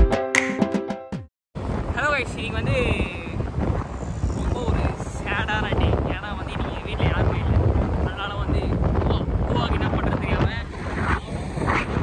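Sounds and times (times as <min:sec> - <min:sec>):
wind buffeting microphone: 0:01.6 - 0:12.0
people talking: 0:02.0 - 0:03.4, 0:04.4 - 0:11.4.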